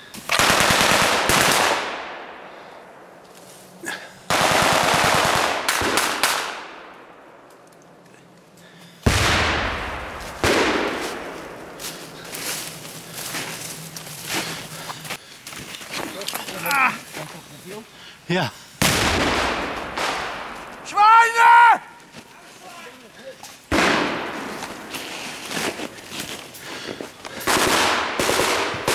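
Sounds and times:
automatic gunfire bursts: 0.3 - 1.9, 4.3 - 6.6
scattered lighter gunshots: 9.0 - 11.8, 18.8 - 20.8, 23.7 - 24.9
single heavy gunshots echoing: 9.1 - 11.8, 18.8 - 20.8, 23.7 - 24.9.

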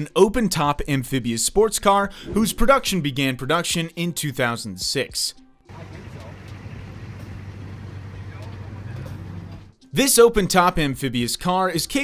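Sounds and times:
vehicle engine running: 5.7 - 9.7.

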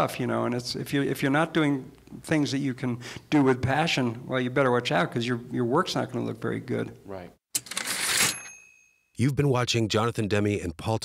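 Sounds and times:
typewriter carriage clatter: 7.6 - 8.5
typewriter bell ding: 7.6 - 9.1.

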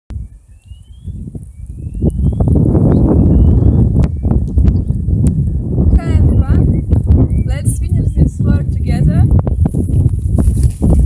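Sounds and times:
wind buffeting microphone: 0.1 - 11.0
faint rising whistled tones: 0.2 - 4.9.

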